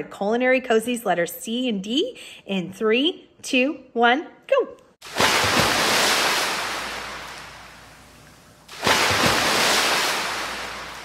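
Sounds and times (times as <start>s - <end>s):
ocean waves breaking: 5.0s - 11.0s.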